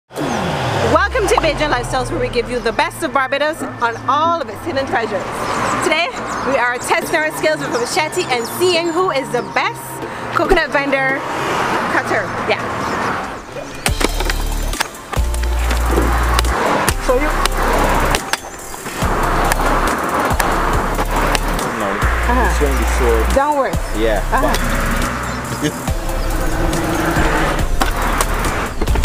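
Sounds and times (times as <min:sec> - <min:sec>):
music with deep bass: 0:00.2 - 0:05.7, 0:13.9 - 0:29.0
woman speaking: 0:00.9 - 0:11.2, 0:11.8 - 0:12.8, 0:23.3 - 0:24.7
machete chopping coconut: 0:16.3 - 0:18.5.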